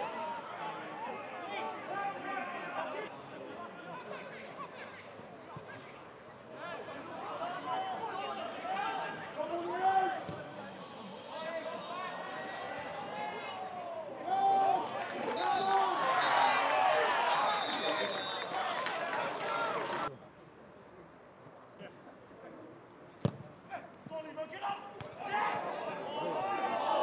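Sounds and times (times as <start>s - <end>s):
players and spectators shouting: 6.6s - 20.1s, 23.7s - 27.0s.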